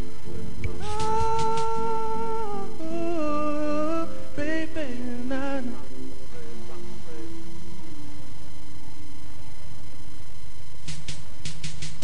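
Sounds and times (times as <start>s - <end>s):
man singing held notes: 0.0s - 7.5s.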